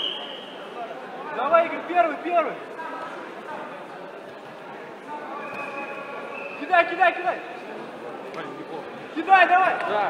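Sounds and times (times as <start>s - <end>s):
spectators' voices in echoing hall: 0.0s - 10.0s.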